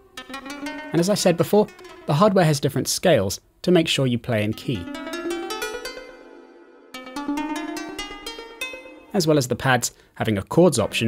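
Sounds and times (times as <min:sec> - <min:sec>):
plucked synth notes: 0:00.0 - 0:02.4, 0:04.5 - 0:09.4.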